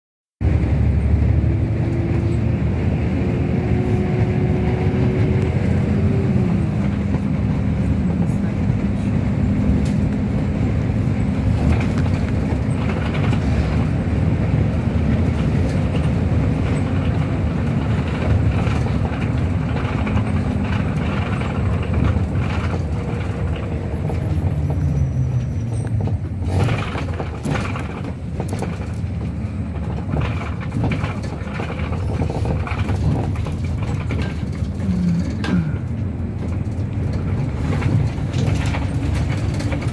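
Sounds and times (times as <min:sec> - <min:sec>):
bus drivetrain drone: 0:00.4 - 0:39.9
tyre noise on road: 0:00.4 - 0:39.9
sharp rattles: 0:26.0 - 0:39.9.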